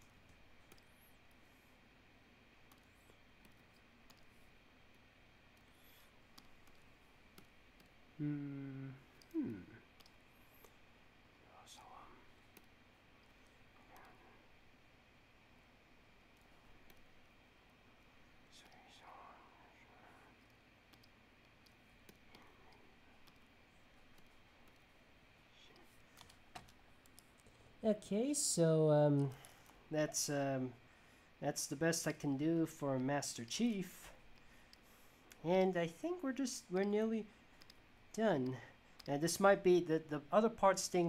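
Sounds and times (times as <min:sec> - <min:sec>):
computer mouse clicks: 0:00.2 - 0:01.4, 0:02.6 - 0:08.0, 0:09.1 - 0:09.4, 0:10.0 - 0:10.8, 0:12.5 - 0:14.2, 0:16.3 - 0:17.2, 0:18.6 - 0:19.1, 0:20.0 - 0:25.0, 0:25.6 - 0:27.6, 0:37.6 - 0:39.4.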